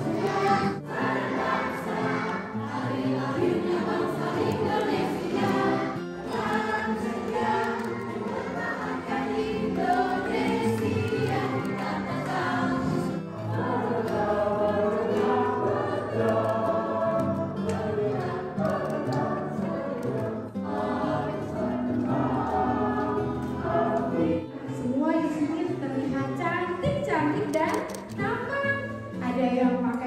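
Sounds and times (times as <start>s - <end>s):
choir singing: 0.0s - 25.7s
musical accompaniment: 0.0s - 26.7s.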